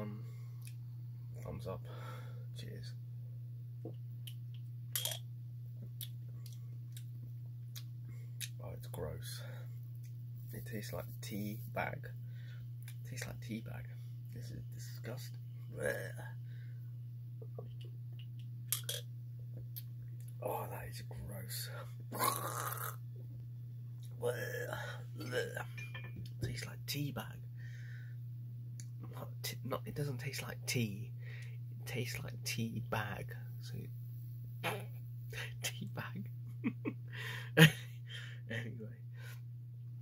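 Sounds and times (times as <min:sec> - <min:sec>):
steady low hum: 0:00.0 - 0:40.0
man's vocal sound of disgust: 0:22.1 - 0:23.0, 0:24.2 - 0:25.7
swallowing: 0:22.1 - 0:23.0.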